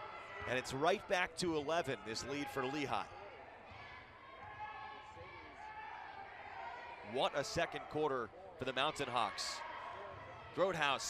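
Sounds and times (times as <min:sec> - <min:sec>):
distant voices in a gym: 0:00.0 - 0:11.0.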